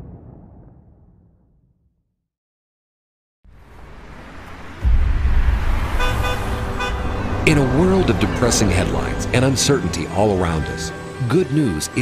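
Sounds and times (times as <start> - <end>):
road traffic rumble: 3.5 - 11.9
car horn toots: 5.9 - 9.4.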